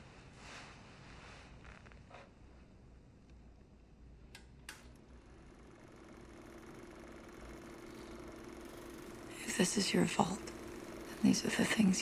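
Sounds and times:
projector humming: 0:02.1 - 0:12.0
projector switch clicks: 0:04.3 - 0:05.0.

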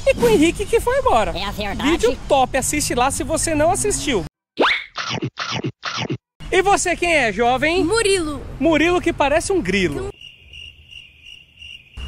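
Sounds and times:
cricket chirps sound effect: 0:10.1 - 0:12.0.

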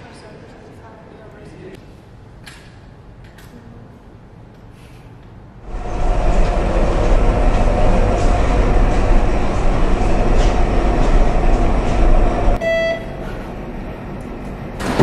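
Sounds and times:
steady hum: 0:05.2 - 0:15.0
loud rumbling noise: 0:05.6 - 0:12.6
short electronic beep: 0:12.6 - 0:13.2.

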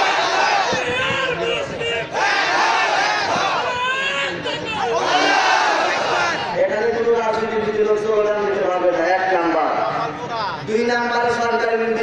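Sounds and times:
crowd: 0:00.0 - 0:12.0
man preaching over loudspeaker: 0:00.7 - 0:02.2, 0:06.2 - 0:12.0.

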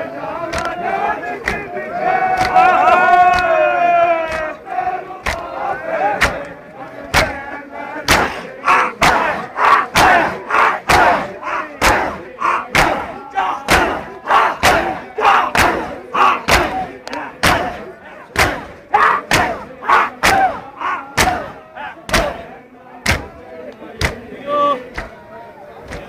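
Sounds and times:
men chanting: 0:00.0 - 0:26.0.

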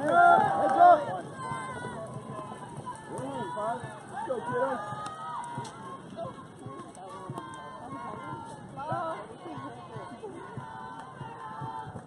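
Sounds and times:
people shouting and chattering: 0:00.0 - 0:12.0.

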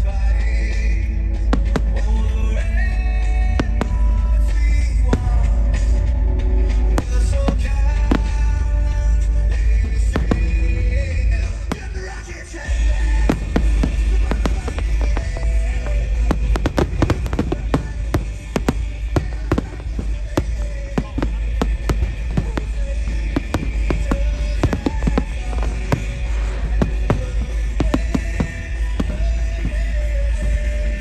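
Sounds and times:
music: 0:00.0 - 0:31.0
fireworks bursting with bangs: 0:00.1 - 0:31.0.

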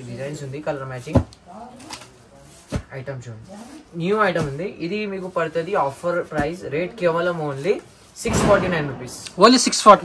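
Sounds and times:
plastic wrapping rustling: 0:00.3 - 0:08.3.

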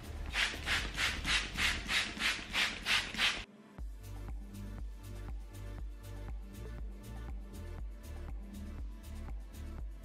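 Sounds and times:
music with steady beat: 0:00.0 - 0:10.0
spray bottle squirting: 0:00.3 - 0:03.5.

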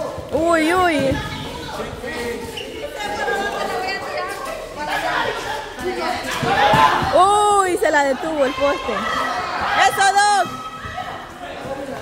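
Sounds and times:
people calling and chattering: 0:00.0 - 0:12.0.

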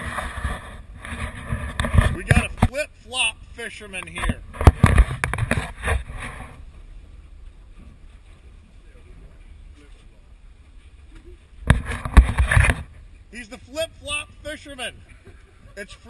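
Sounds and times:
cloth rubbing on camera: 0:00.0 - 0:02.5, 0:04.6 - 0:08.8, 0:09.8 - 0:13.0.

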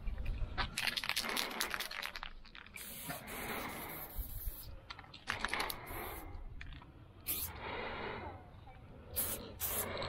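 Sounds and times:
spray paint can hissing: 0:00.8 - 0:07.6, 0:09.1 - 0:10.0.

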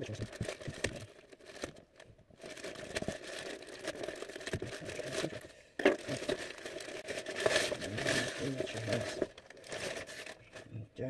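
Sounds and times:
plastic bag crinkling: 0:00.0 - 0:10.7
plastic tearing: 0:00.0 - 0:10.7.

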